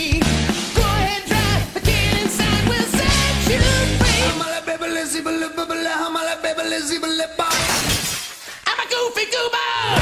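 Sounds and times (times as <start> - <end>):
music: 0.0 - 4.7
shattering crash: 7.5 - 8.5.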